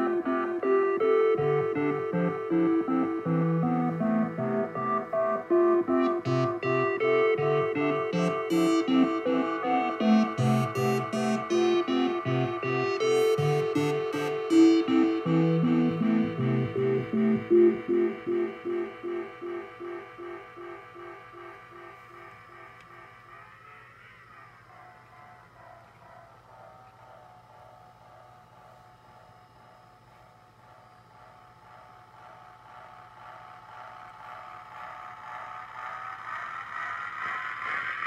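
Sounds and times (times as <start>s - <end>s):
synthesizer pulsing notes: 0.0s - 29.8s.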